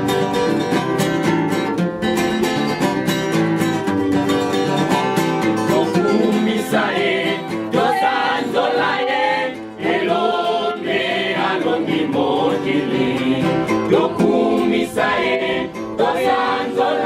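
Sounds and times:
choir singing a hymn: 0:05.7 - 0:17.0.

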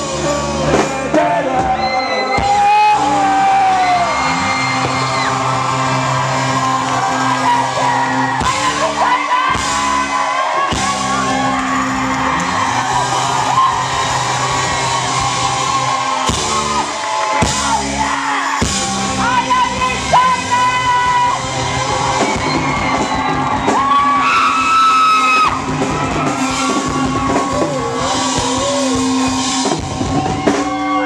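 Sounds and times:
person singing: 0:00.0 - 0:04.1, 0:27.3 - 0:29.7
crowd yelling and whooping: 0:00.0 - 0:31.0
rock band playing live: 0:00.0 - 0:31.0.

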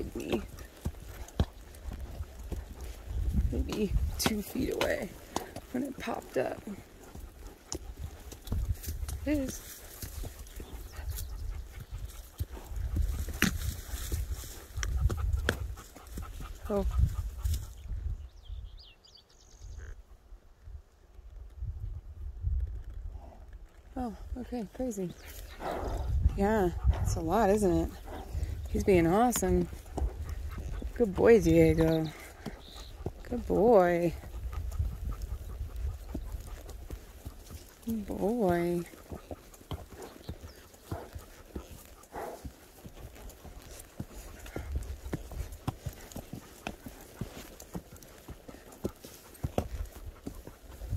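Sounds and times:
horse hooves soft thuds: 0:00.0 - 0:18.1, 0:21.1 - 0:50.9
wind buffeting microphone: 0:00.0 - 0:19.0, 0:20.6 - 0:50.9.

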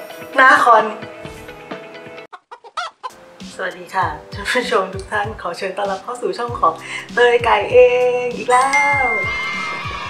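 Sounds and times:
background music: 0:00.0 - 0:02.3, 0:03.0 - 0:10.0
chicken clucks: 0:02.3 - 0:03.2
chicken squawk: 0:02.3 - 0:03.2.

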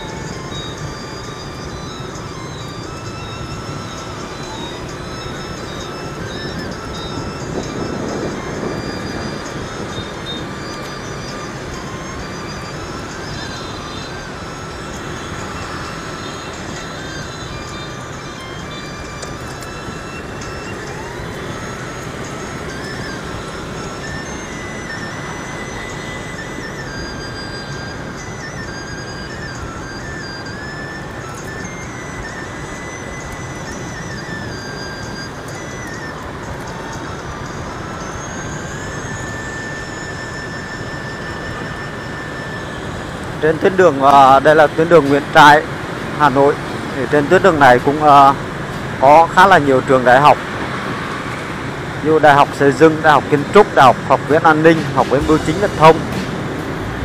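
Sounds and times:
faint background music: 0:00.0 - 0:57.0
motorbike road noise: 0:00.0 - 0:57.0.

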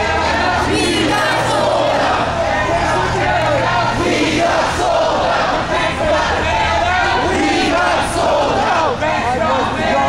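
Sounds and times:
crowd chanting and shouting: 0:00.0 - 0:10.0.

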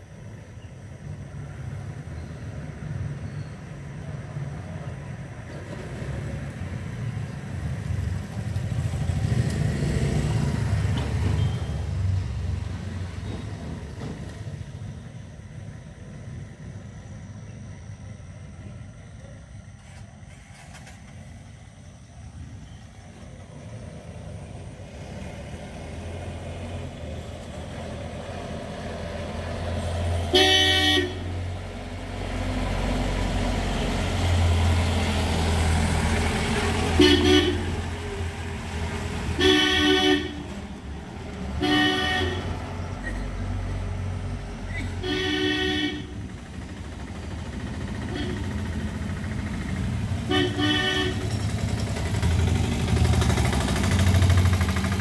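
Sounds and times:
bus engine approaching: 0:00.0 - 0:55.0
vehicle horn honking: 0:30.3 - 0:31.3, 0:37.0 - 0:37.7, 0:39.4 - 0:40.4, 0:41.6 - 0:42.5, 0:45.0 - 0:46.2, 0:50.3 - 0:51.3
motorcycle engine: 0:45.0 - 0:55.0.

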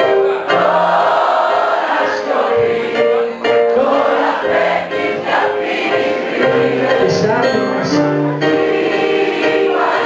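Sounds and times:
group singing: 0:00.0 - 0:07.3, 0:08.0 - 0:10.0.

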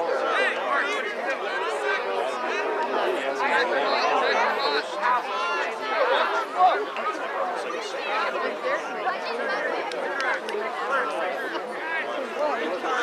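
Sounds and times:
voices talking and calling out: 0:00.0 - 0:13.0.

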